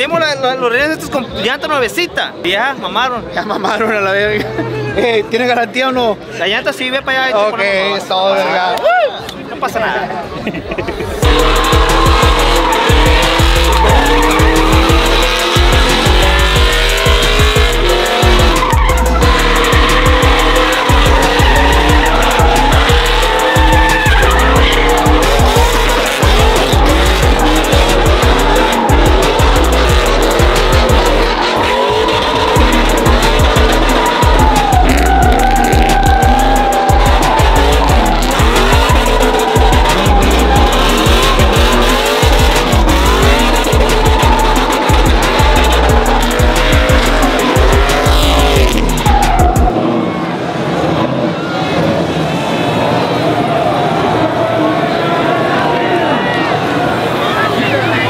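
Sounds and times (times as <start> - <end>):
engines revving high: 11.1 - 58.0
song with heavy beat: 11.2 - 49.7
tyres squealing: 11.2 - 49.7.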